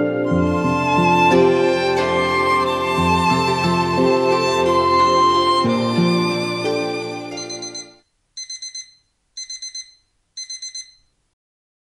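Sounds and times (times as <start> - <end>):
digital alarm clock beeps: 7.4 - 11.1.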